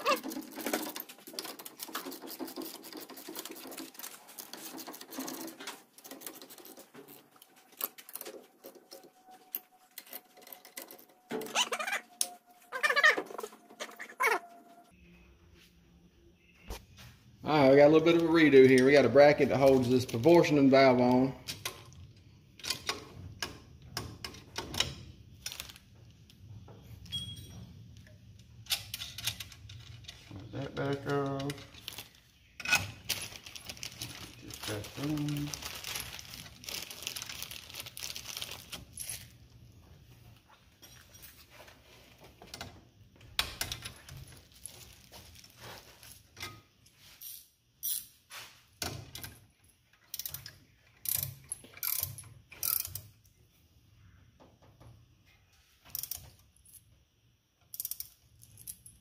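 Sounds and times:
wrench clicking on metal: 50.1 - 53.1, 57.7 - 58.8.

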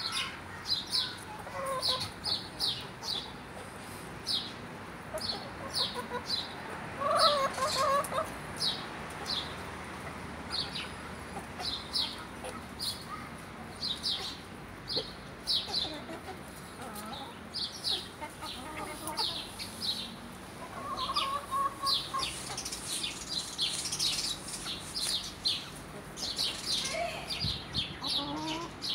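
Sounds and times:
chickens chirping and clucking: 0.0 - 28.9.

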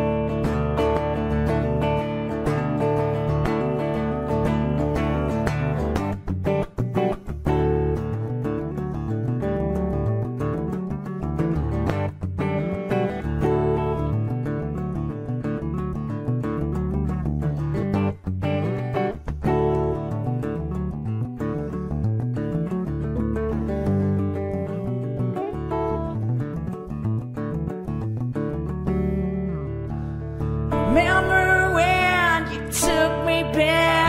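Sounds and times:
solo guitar picked and strummed: 0.0 - 34.0.

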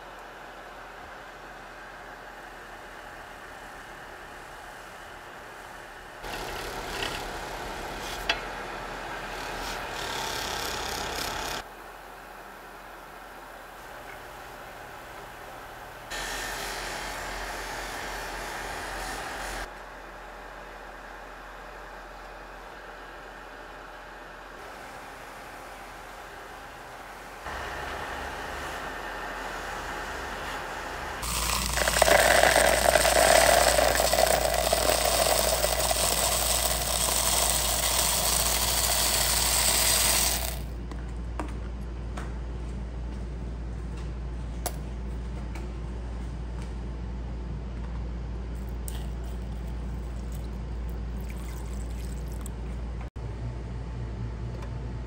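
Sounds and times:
polishing motor running: 9.4 - 11.6, 29.6 - 40.7.

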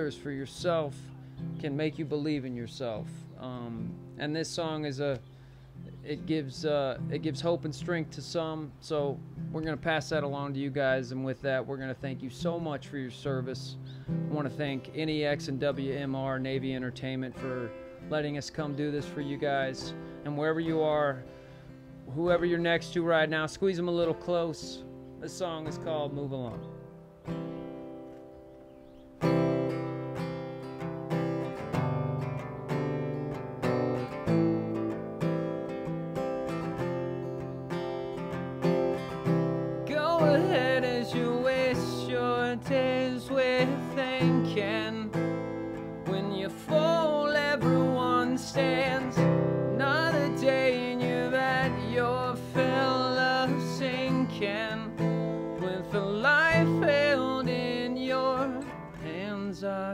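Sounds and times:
acoustic guitar strumming: 0.0 - 59.9
man singing: 13.3 - 21.2, 39.8 - 59.9.

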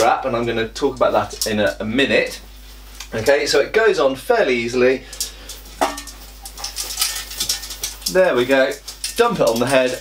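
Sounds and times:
steel helmet clinking: 5.6 - 10.0.

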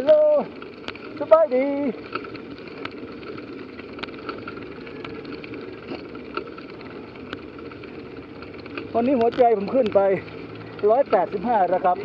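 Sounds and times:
bicycle tyre noise on asphalt: 0.0 - 12.0
small clicks and rattles: 0.0 - 12.0.

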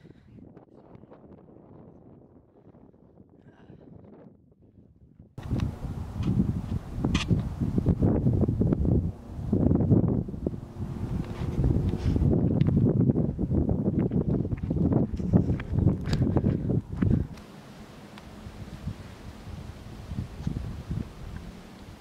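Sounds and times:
wind buffeting microphone: 0.0 - 17.4, 18.3 - 22.0.

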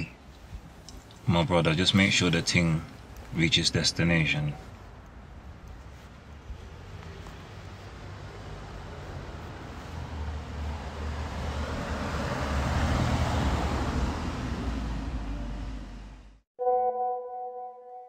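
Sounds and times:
car passing by: 5.7 - 16.4
phone notification chime: 16.6 - 18.0.

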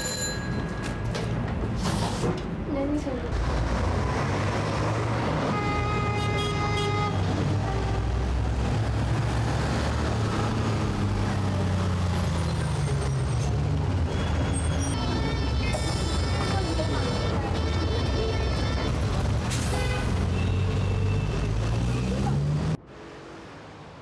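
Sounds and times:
bus and car engines rumbling: 0.0 - 24.0.

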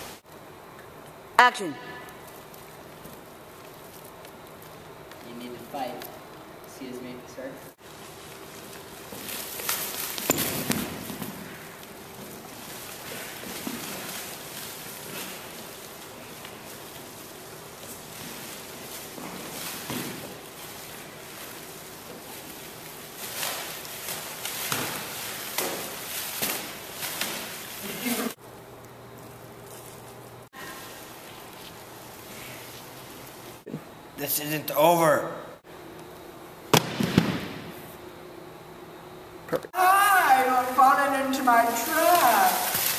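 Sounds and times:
faint shuffling on floor: 7.8 - 28.4
kick landing: 36.7 - 37.7.

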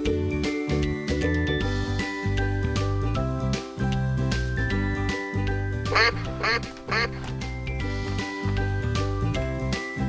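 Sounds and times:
cheerful children's music: 0.0 - 10.0
duck quacks: 5.9 - 7.3.

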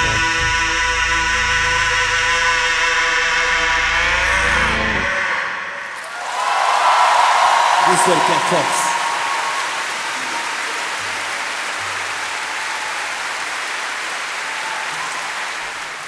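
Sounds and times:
audience applause: 6.0 - 16.0.

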